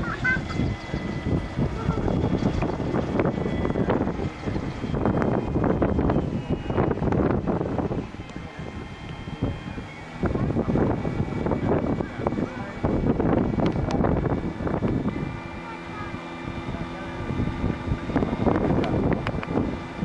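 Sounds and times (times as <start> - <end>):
model aircraft engine drone: 0.0 - 20.0
wind buffeting microphone: 0.0 - 20.0.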